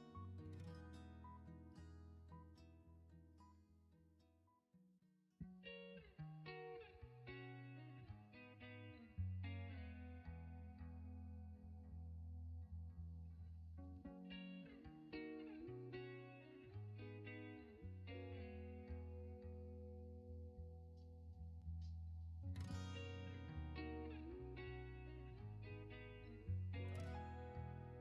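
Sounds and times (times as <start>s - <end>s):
plucked guitar background music: 0.0s - 3.6s, 5.4s - 13.1s, 13.7s - 28.0s.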